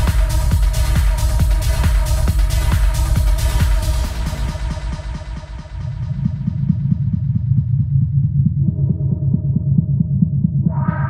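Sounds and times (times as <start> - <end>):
pulsing techno bass line: 0.0 - 11.0.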